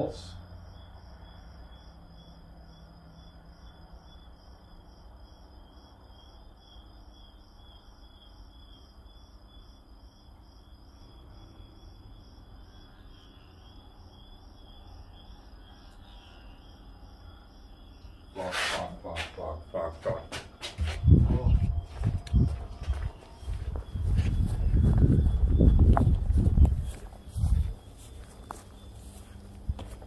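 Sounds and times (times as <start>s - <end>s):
crickets chirping: 0.0s - 30.0s.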